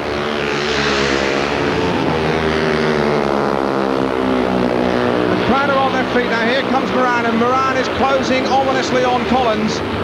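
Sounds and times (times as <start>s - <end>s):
motorcycle engines racing: 0.0s - 10.0s.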